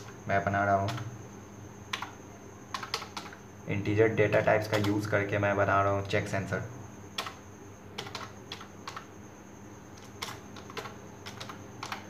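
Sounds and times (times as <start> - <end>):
computer keyboard typing: 0.0 - 1.1, 1.9 - 3.4, 4.2 - 5.3, 7.2 - 7.4, 8.0 - 9.1, 9.9 - 12.0.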